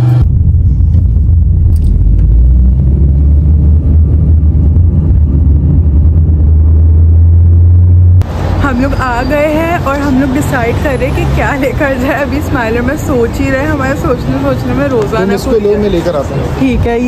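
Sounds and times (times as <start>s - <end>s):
car driving rumble: 0.0s - 16.9s.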